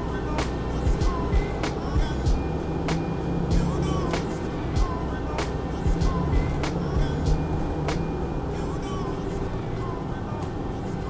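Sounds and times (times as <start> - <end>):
van engine humming: 0.0 - 11.0
sharp regular ticks: 0.4 - 4.6.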